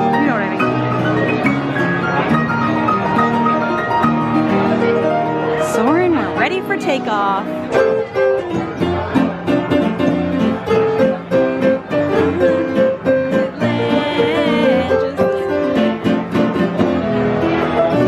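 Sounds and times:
upright piano playing chords: 0:00.0 - 0:18.0.

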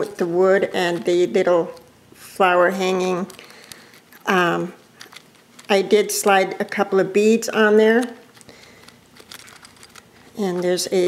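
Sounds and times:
faint rustling: 0:02.8 - 0:11.0.

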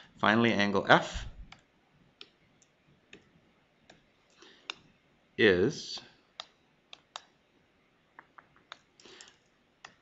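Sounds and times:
computer mouse clicks: 0:01.5 - 0:03.3, 0:06.4 - 0:07.4, 0:08.2 - 0:10.0.

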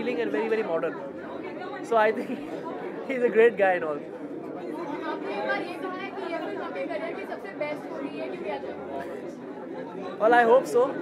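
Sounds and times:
chatter of voices: 0:00.0 - 0:11.0.

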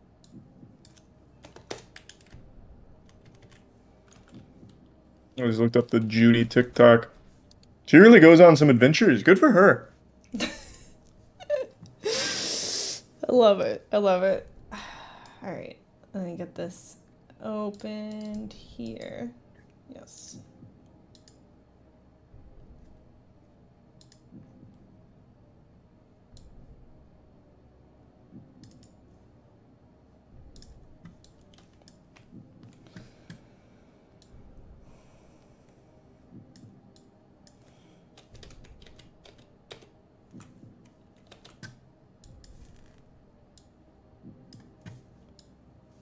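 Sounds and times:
soft low thumps: 0:00.1 - 0:00.9, 0:02.2 - 0:03.5, 0:14.3 - 0:15.2, 0:20.3 - 0:20.9, 0:22.2 - 0:23.4, 0:24.2 - 0:25.2, 0:26.2 - 0:27.4, 0:28.3 - 0:28.7, 0:30.2 - 0:31.4, 0:32.1 - 0:33.5, 0:34.2 - 0:35.5, 0:36.2 - 0:37.0, 0:40.2 - 0:40.9, 0:44.1 - 0:45.0
computer keyboard typing: 0:00.8 - 0:02.4, 0:03.0 - 0:04.4, 0:30.6 - 0:33.4, 0:37.5 - 0:41.8.

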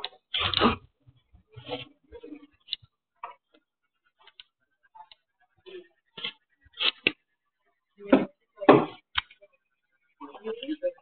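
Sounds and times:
faint irregular clicks: 0:02.6 - 0:05.3.

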